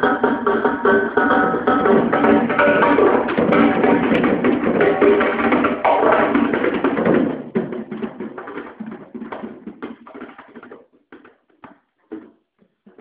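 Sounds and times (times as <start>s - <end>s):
drum kit playing: 0.0s - 10.6s.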